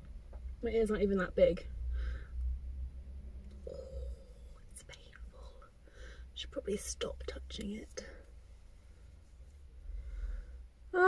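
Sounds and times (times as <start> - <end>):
person humming: 3.6 - 4.4.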